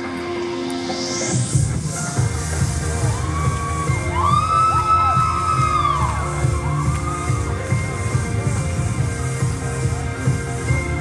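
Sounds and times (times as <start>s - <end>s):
pop dance music echoing: 0.0s - 11.0s.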